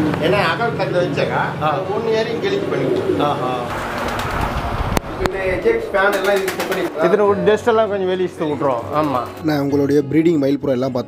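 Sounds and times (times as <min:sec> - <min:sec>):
pigeons cooing: 0:02.4 - 0:07.0.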